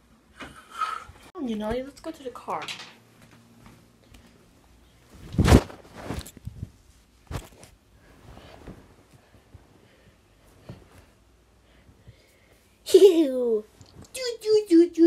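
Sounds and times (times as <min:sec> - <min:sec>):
bedding rustling: 0:03.4 - 0:12.8.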